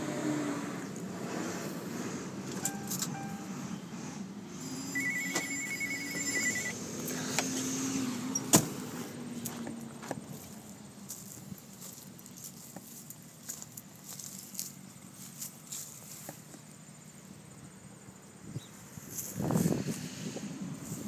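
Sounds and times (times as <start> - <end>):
car warning chime beeping: 2.6 - 3.6, 4.7 - 6.8.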